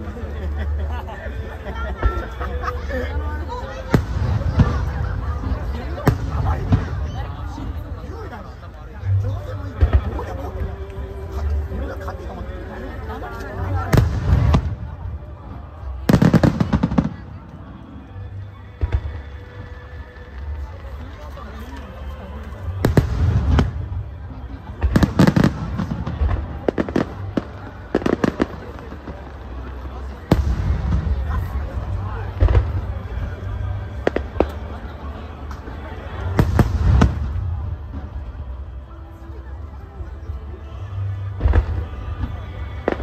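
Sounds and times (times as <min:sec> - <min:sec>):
firework booms: 0:13.9 - 0:15.0, 0:32.4 - 0:32.9, 0:36.3 - 0:38.1.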